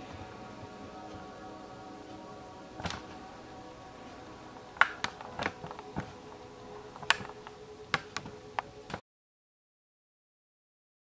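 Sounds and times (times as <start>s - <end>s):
faint steady hum: 0.0s - 9.0s.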